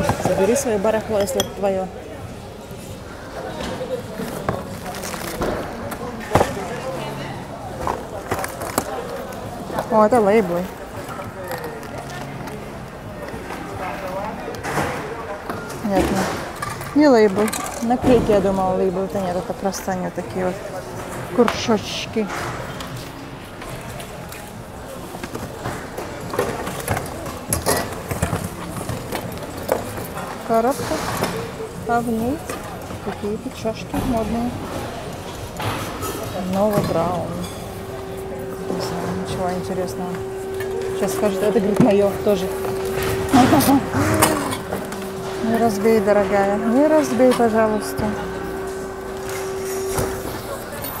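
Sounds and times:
people talking: 0.0s - 2.4s, 3.3s - 22.4s, 30.2s - 51.0s.

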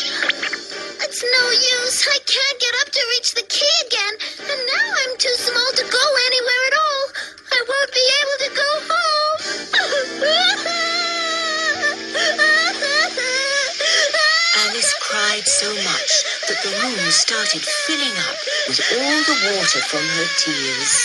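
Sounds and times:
background music: 0.0s - 21.0s
cartoon character crying: 9.8s - 13.5s.

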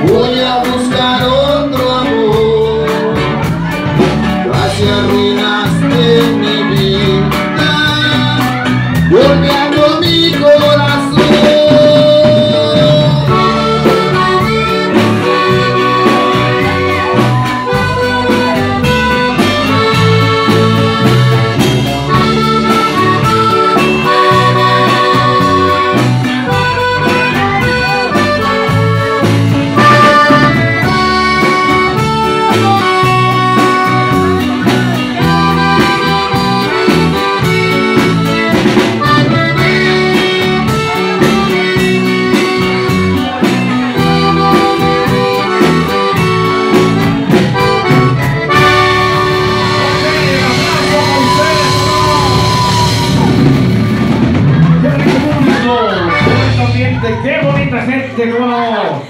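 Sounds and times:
button accordion melody: 0.0s - 57.0s
drum kit with cymbals: 0.0s - 57.0s
bass line: 0.0s - 59.0s.

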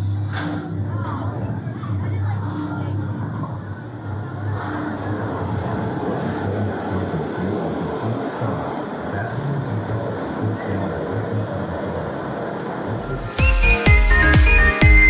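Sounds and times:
music: 0.0s - 6.8s, 13.0s - 15.0s
roller coaster wheels rumbling on track: 0.0s - 13.2s
voices: 0.0s - 14.2s.

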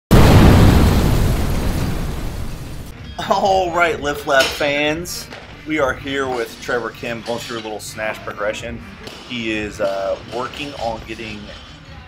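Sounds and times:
loud boom: 0.1s - 2.9s.

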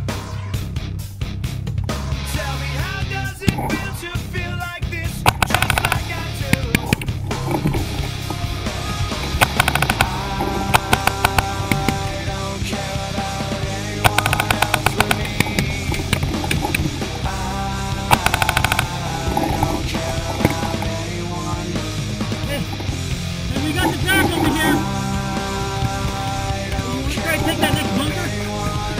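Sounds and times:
rock music: 0.0s - 28.9s
rapid paintball marker fire: 5.3s - 7.9s, 9.4s - 12.0s, 14.1s - 17.0s, 18.1s - 19.7s.

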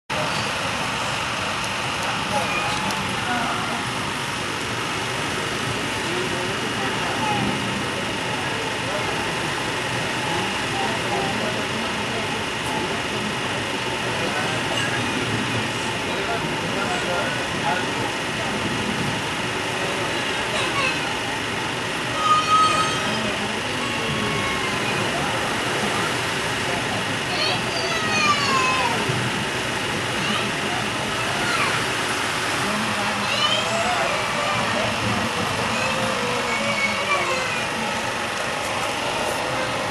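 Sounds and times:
people talking: 0.1s - 39.9s
train carriage running noise: 0.1s - 39.9s.

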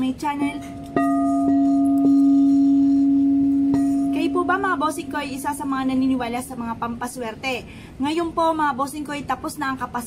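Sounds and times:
singing bowl ringing tone: 0.0s - 6.3s
wand tapping bowl: 0.6s - 5.9s.

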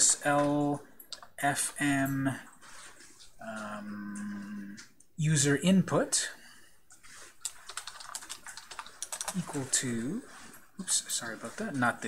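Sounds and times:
keyboard typing: 7.0s - 11.6s.

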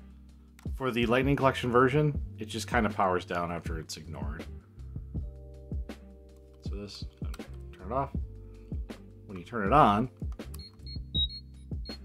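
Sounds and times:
toy electronic beeps: 10.6s - 12.0s.

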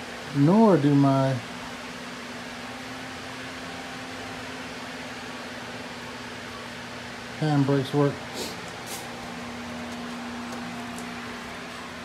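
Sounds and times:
fan-like hum: 0.0s - 12.0s.

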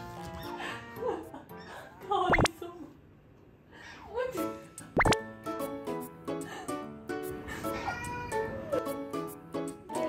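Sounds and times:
upward-sliding pop effect: 5.0s - 5.2s.

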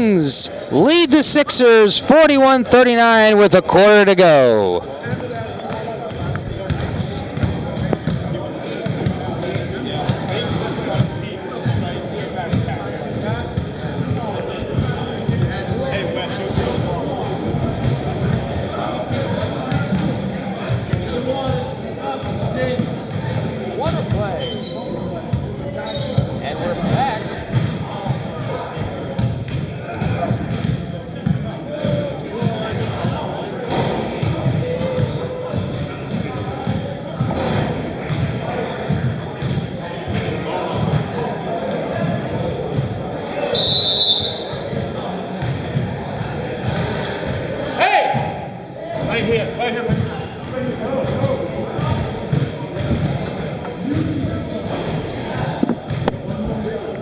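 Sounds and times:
voices chattering and echoing: 0.0s - 57.0s.

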